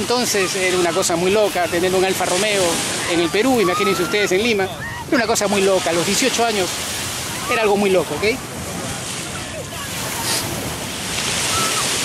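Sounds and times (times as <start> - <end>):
ocean surf washing onto beach: 0.0 - 12.0.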